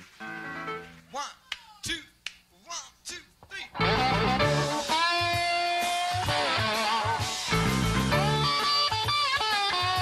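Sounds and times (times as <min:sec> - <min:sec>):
live jazz-rock band playing: 0:03.8 - 0:10.0.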